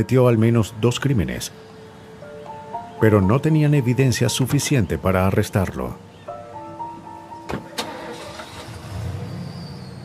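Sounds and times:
background music with held notes: 0.0s - 9.6s
truck door shutting: 7.4s - 9.8s.

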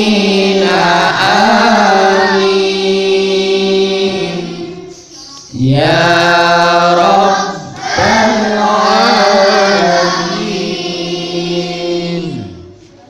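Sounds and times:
children reciting melodically: 0.0s - 13.0s.

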